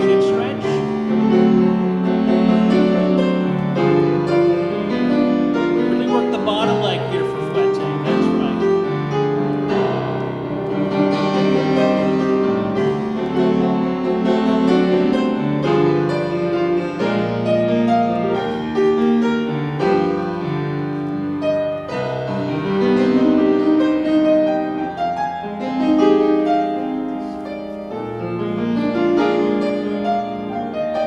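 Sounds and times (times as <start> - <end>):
slow grand piano piece: 0.0 - 31.0.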